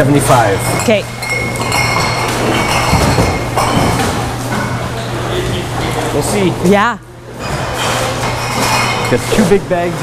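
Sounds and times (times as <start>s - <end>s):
steady low hum: 0.0s - 10.0s
cans and bottles clinking: 0.3s - 4.9s.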